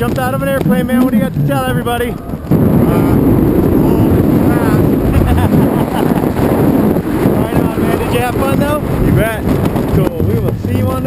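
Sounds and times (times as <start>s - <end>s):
wind buffeting microphone: 0.0s - 11.0s
faint voices: 1.6s - 8.5s.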